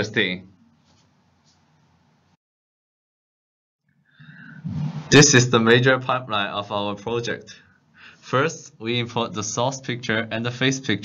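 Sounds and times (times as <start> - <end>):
breathing at microphone: 4.0 - 5.1, 7.5 - 8.3
person speaking: 4.3 - 7.6.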